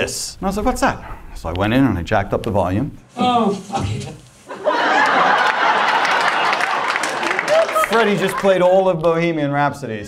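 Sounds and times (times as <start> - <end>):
audience laughing: 4.5 - 8.6
people clapping: 4.8 - 9.1.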